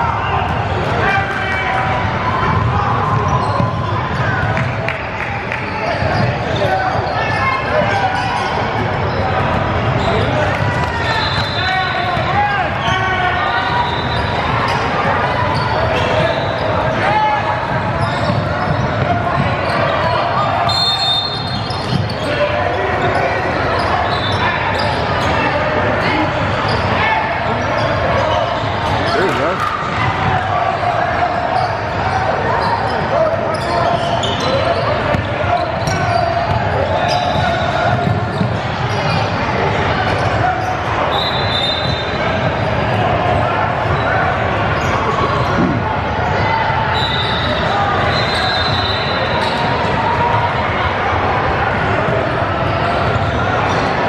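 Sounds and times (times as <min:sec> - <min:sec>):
chatter of many voices: 0:00.0 - 0:54.0.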